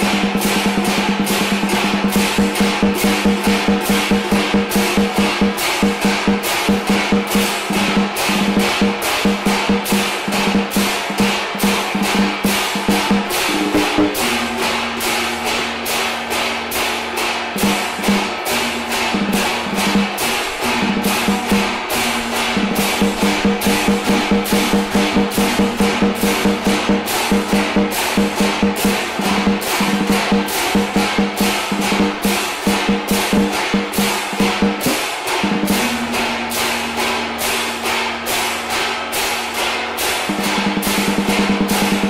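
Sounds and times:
ringing gongs: 0:00.0 - 0:32.6, 0:33.2 - 0:42.0
drum beaten with sticks: 0:00.0 - 0:42.0
held tone: 0:13.5 - 0:14.7.

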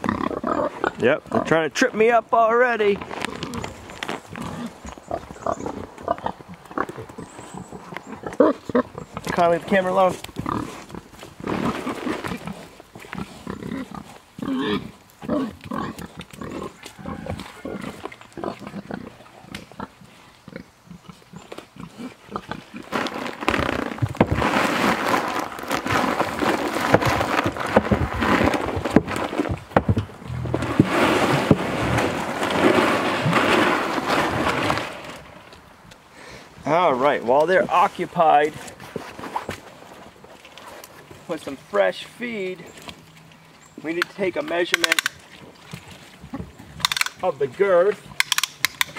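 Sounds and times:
pigs grunting and eating: 0:00.0 - 0:02.2, 0:02.9 - 0:35.5, 0:37.4 - 0:48.9
rubber boots squelching in mud: 0:03.0 - 0:20.6, 0:21.2 - 0:36.1.

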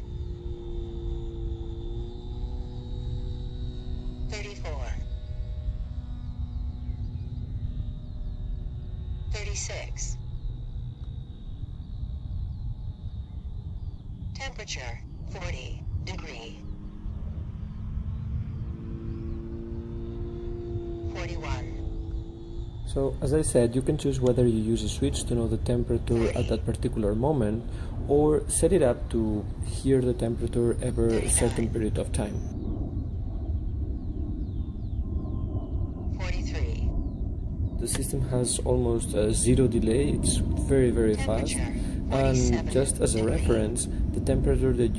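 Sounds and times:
faint steady hum: 0:00.0 - 0:44.9
wind rumble on microphone: 0:00.0 - 0:44.9.

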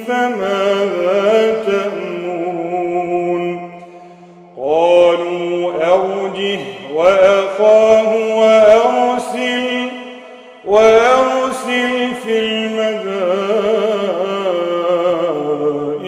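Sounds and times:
man reciting melodically: 0:00.0 - 0:16.0.

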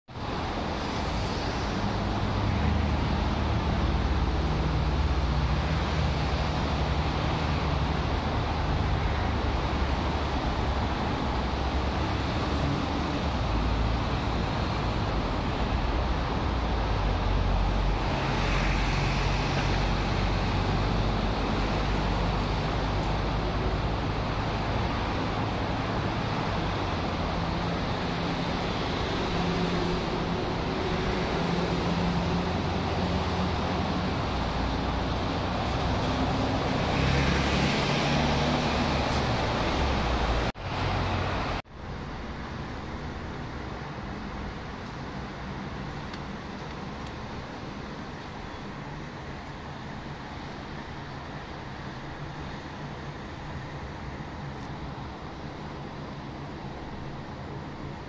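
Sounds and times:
road traffic hum: 0:00.1 - 0:58.0.

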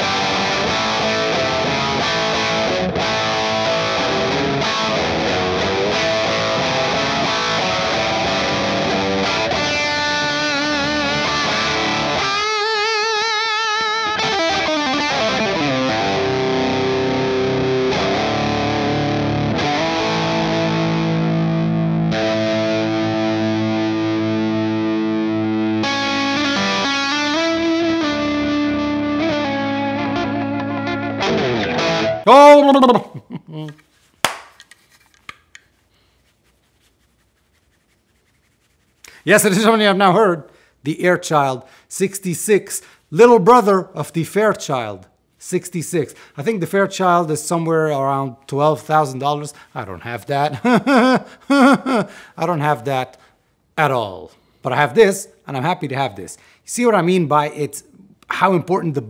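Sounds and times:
electric guitar playing: 0:00.0 - 0:32.3.

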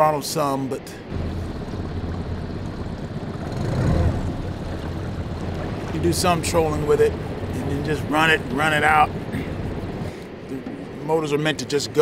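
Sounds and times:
outboard motor humming: 0:01.0 - 0:12.0.

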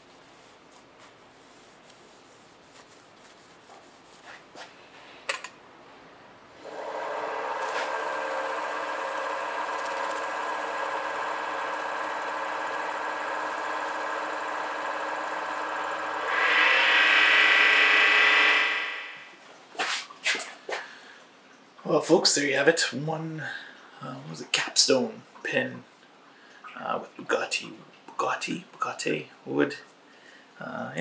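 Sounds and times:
paper towel rubbing hiss: 0:00.0 - 0:04.9
wood lathe whining: 0:06.6 - 0:19.3.

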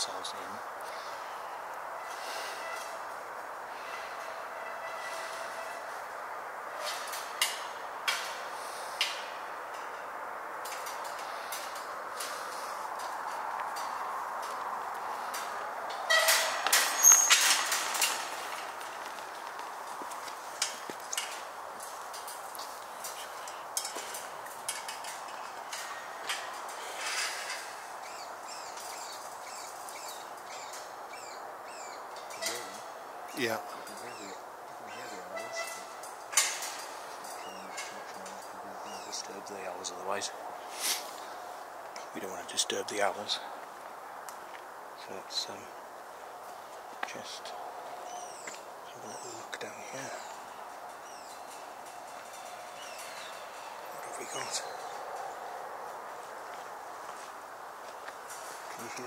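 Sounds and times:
metal gate rattling and scraping: 0:00.3 - 0:43.6, 0:45.0 - 0:59.0
faint hiss: 0:36.4 - 0:43.6.

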